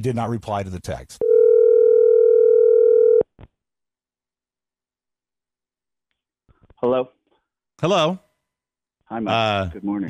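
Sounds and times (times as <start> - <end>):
telephone ringback tone: 1.2 - 3.2.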